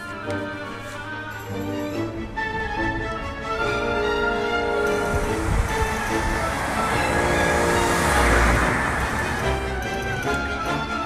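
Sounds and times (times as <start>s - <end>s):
background music: 0.0s - 11.0s
car driving past: 4.4s - 10.4s.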